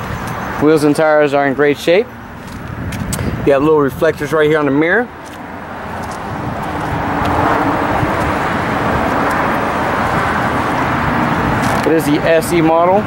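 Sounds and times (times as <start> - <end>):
low engine hum: 0.0 - 13.0
road traffic noise: 0.0 - 13.0.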